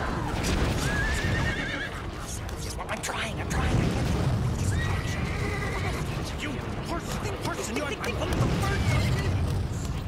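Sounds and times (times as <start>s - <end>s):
volcano rumbling: 3.0s - 10.0s.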